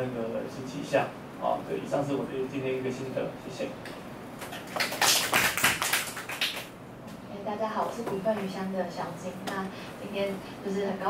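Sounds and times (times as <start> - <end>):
people speaking: 7.3 - 11.0.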